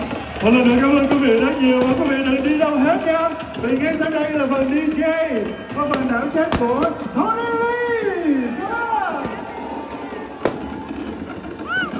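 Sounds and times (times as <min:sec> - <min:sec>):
firecracker bang: 0:09.1 - 0:11.8.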